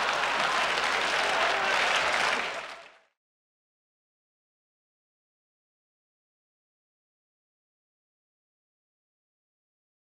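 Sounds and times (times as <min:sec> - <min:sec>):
audience applauding: 0:00.0 - 0:03.2.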